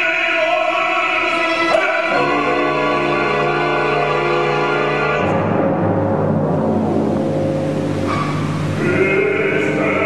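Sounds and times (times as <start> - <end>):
operatic singing with vibrato: 0.0 - 5.6, 7.8 - 10.0
orchestra holding low notes: 1.0 - 10.0.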